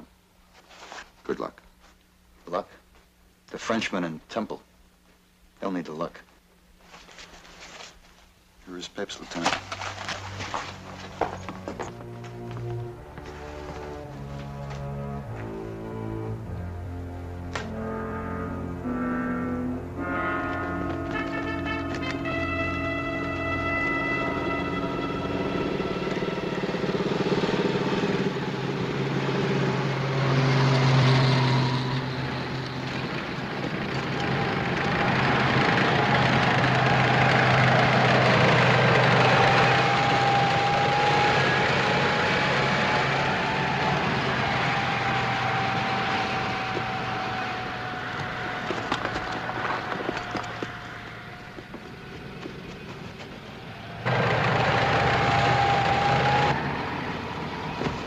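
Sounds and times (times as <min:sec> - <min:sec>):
thin whine: 0:06.8 - 0:58.0
trucks driving past: 0:09.5 - 0:58.0.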